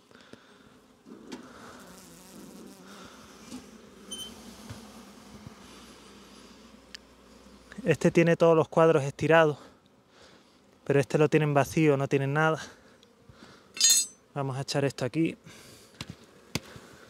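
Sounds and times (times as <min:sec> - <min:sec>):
honeybees buzzing: 0:00.0 - 0:17.0.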